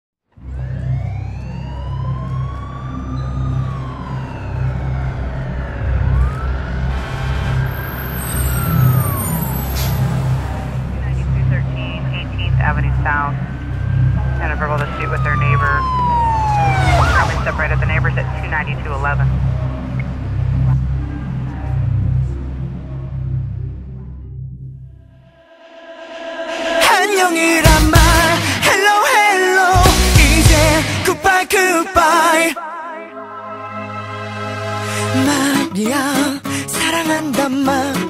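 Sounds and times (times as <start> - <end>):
emergency sirens wailing: 0.4 - 24.0
siren warbling yelps: 0.5 - 10.1, 13.3 - 20.0
low engine rumble: 3.7 - 24.2.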